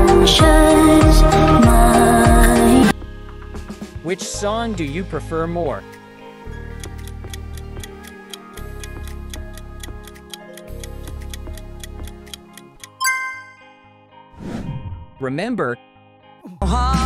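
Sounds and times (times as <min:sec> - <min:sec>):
countdown timer ticking: 0:06.6 - 0:13.7
ringing chime: 0:13.0 - 0:13.8.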